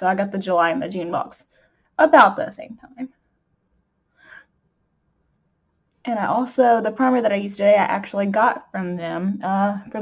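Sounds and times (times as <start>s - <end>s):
woman speaking: 0.0s - 1.4s, 2.0s - 3.2s, 6.0s - 10.0s.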